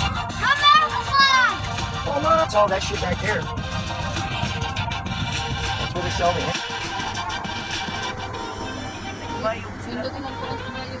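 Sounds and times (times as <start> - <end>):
background music: 0.0 - 11.0
car rumble: 0.0 - 11.0.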